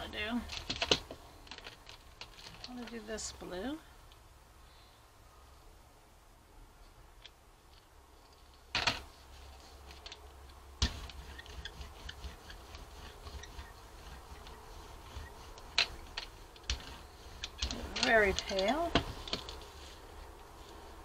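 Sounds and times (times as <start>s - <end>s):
brayer rolling paint: 8.6s - 21.0s.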